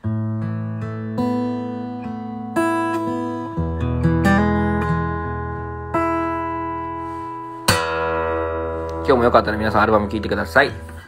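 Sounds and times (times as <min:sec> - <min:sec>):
acoustic guitar chords strummed: 0:00.0 - 0:11.0.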